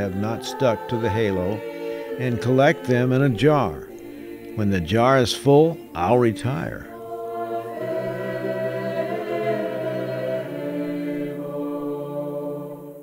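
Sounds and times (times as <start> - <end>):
choir singing held notes: 0.0 - 13.0.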